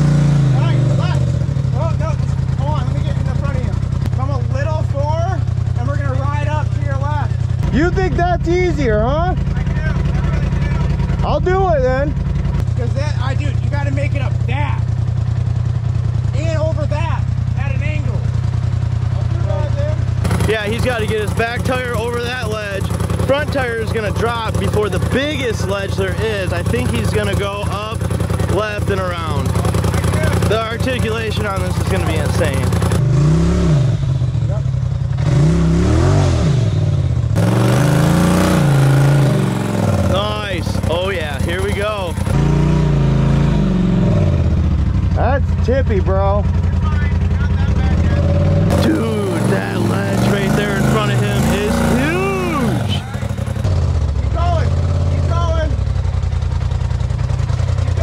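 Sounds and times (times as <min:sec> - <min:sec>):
engine revving: 0:00.0 - 0:58.0
voices: 0:00.5 - 0:33.0, 0:34.3 - 0:35.0, 0:38.6 - 0:42.4, 0:45.1 - 0:56.0, 0:57.7 - 0:58.0.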